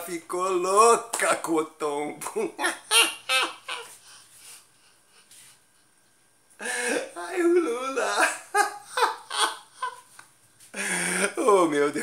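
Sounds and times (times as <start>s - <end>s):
man laughing heartily: 8.0s - 10.2s.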